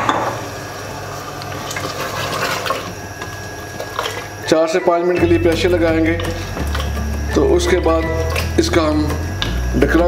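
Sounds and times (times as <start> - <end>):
water pouring and splashing: 1.5 - 4.4, 5.5 - 7.0, 8.2 - 8.7.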